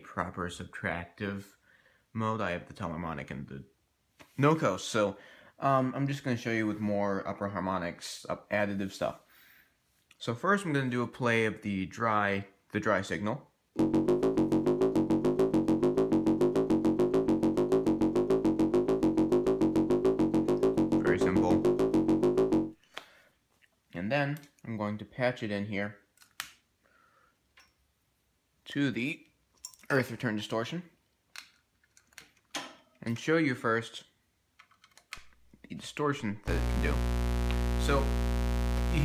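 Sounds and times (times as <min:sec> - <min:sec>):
synthesizer pulsing sequencer pattern: 0:13.8 - 0:22.8, 0:36.4 - 0:39.0.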